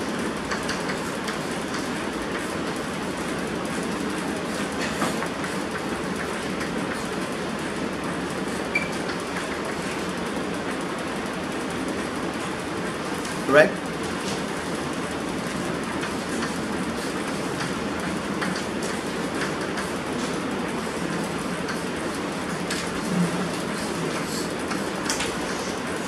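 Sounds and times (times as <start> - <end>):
steady room noise: 0.0 - 26.0.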